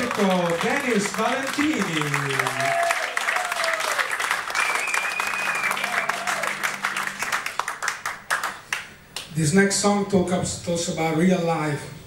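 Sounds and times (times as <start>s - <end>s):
audience cheering: 0.0s - 8.5s
audience applauding: 0.0s - 9.3s.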